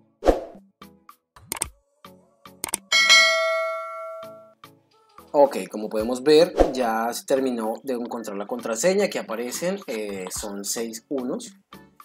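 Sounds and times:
quick mouse clicks: 1.4s - 1.7s
bell chime: 2.9s - 4.6s.

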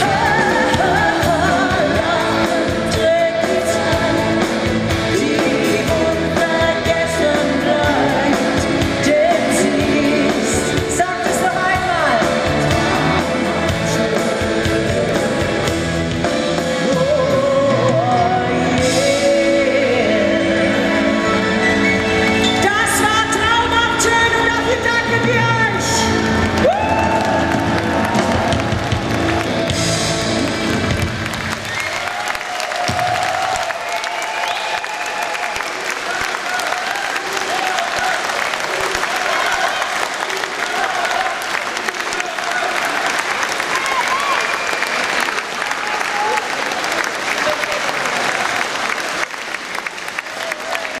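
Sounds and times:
live pop band: 0.0s - 34.0s
audience cheering and shouts: 21.1s - 51.0s
audience applause: 26.1s - 51.0s.

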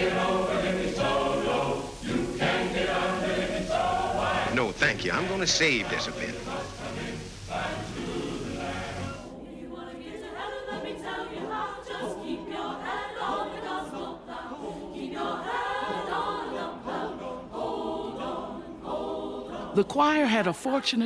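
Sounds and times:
mixed choir singing: 0.0s - 21.0s.

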